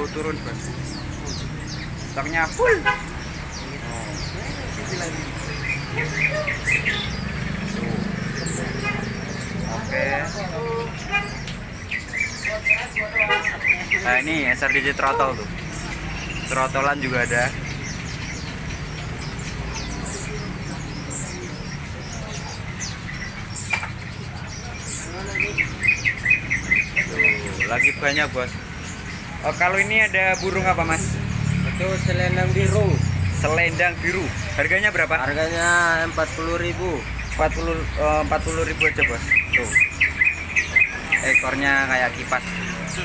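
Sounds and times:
songbirds chirping: 0.0 - 43.0.

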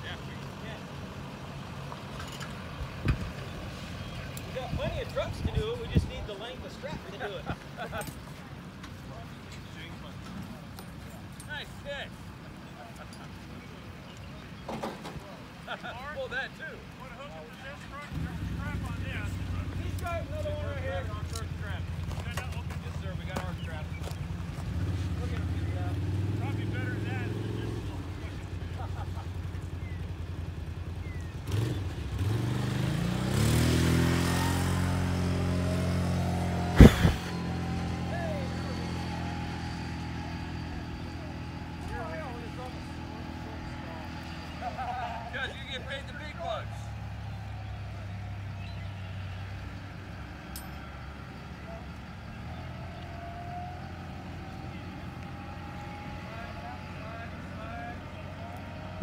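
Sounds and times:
truck engine revving: 13.6 - 59.0.

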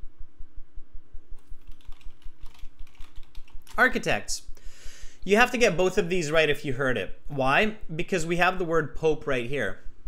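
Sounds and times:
computer keyboard typing: 1.4 - 4.0.

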